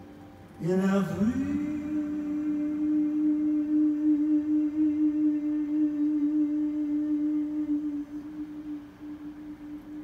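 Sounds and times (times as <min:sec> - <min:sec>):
man singing a long note: 0:00.6 - 0:10.0.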